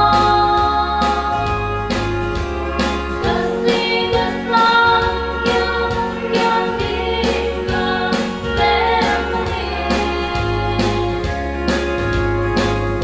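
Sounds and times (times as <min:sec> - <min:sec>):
person singing: 0:00.0 - 0:02.0, 0:02.6 - 0:11.8
bass notes: 0:00.0 - 0:13.0
steady drum beat: 0:00.0 - 0:13.0.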